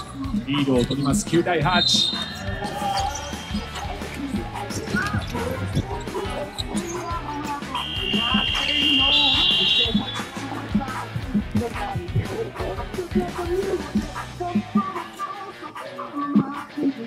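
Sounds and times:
arena music: 0.0s - 17.0s
voices: 0.0s - 17.0s
electronic buzzer: 7.6s - 10.4s.

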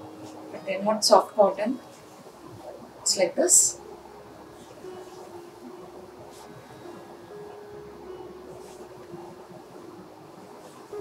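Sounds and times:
faint steady hum: 0.0s - 11.0s
cloth swishing: 8.4s - 9.8s, 10.4s - 11.0s.

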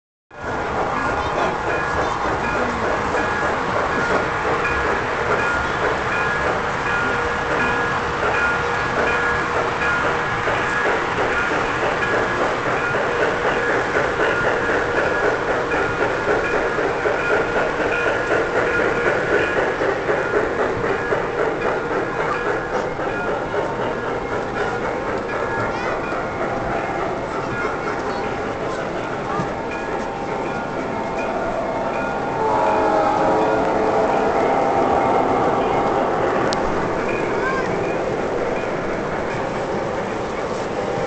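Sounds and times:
model train wheels rolling on track: 0.4s - 41.0s
steam locomotive sound effects: 0.4s - 41.0s.

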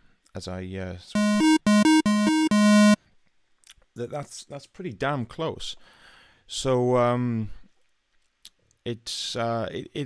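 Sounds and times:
buzzy square-wave synth tone: 1.2s - 3.0s.

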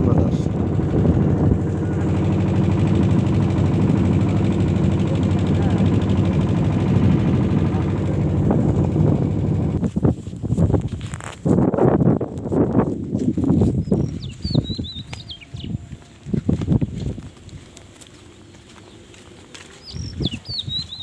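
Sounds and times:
boat engine rattling: 0.0s - 10.8s
rustling: 9.8s - 13.8s
bird chirping: 13.7s - 15.9s, 19.8s - 21.0s.

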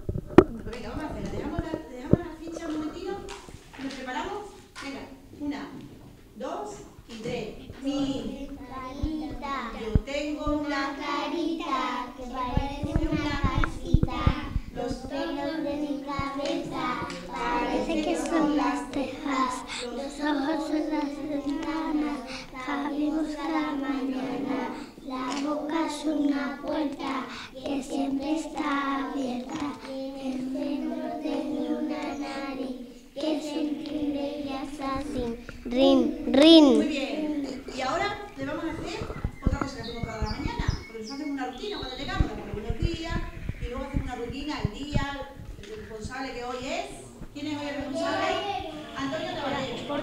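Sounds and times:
young children chanting: 10.8s - 37.6s, 47.8s - 50.0s.

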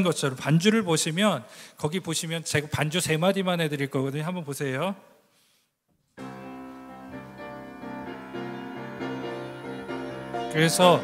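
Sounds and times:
piano playing sustained chords: 6.2s - 11.0s.

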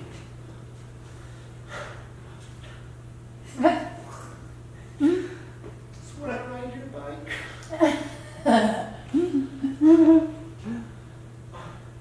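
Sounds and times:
person humming: 8.5s - 10.9s.

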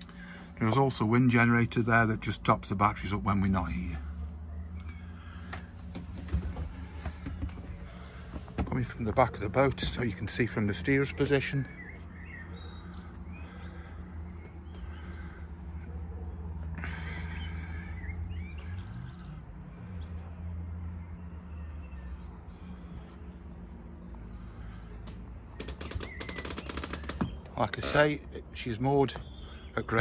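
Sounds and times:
birds chirping: 0.0s - 30.0s
steady low hum: 0.0s - 30.0s
rapid clicks: 25.1s - 27.6s.

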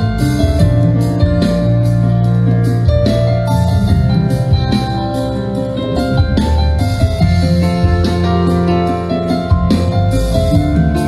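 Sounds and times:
bass line: 0.0s - 11.0s
keyboard and guitar notes: 0.0s - 11.0s.

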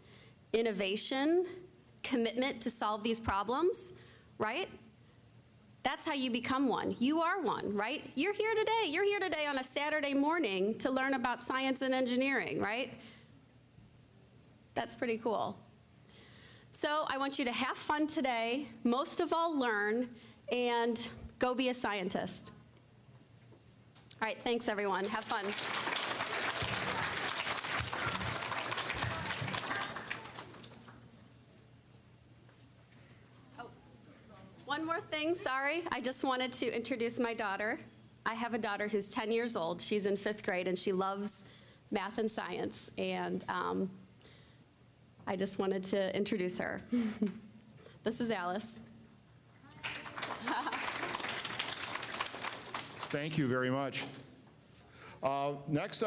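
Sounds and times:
audience applauding: 24.9s - 31.0s, 49.8s - 53.4s.

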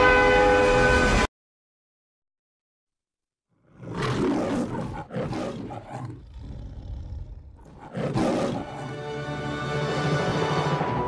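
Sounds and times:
lion roaring: 3.7s - 9.1s.

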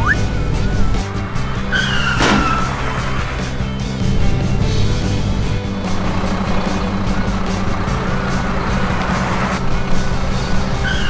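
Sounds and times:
background music: 0.0s - 11.0s
car engine running: 0.0s - 11.0s
tire squeal: 0.0s - 11.0s.

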